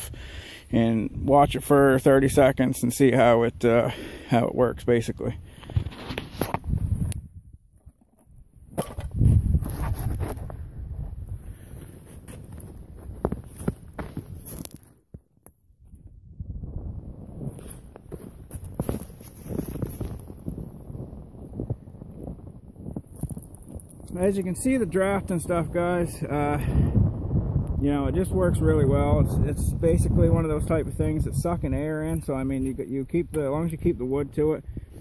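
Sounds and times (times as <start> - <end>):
footsteps crunching in snow: 9.2 - 10.6, 11.4 - 15.2, 17.4 - 20.8.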